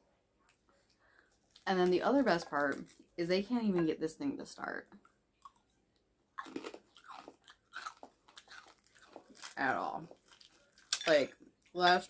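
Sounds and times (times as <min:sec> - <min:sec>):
chewing crunchy food: 0:05.0 - 0:11.8.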